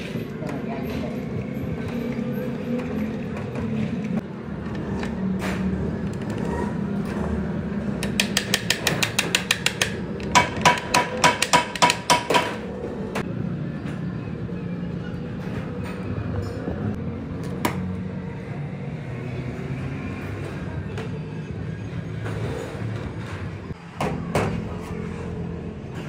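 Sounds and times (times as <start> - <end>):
low workshop hum: 0.0 - 26.0
hammer tapping on metal: 8.0 - 12.6.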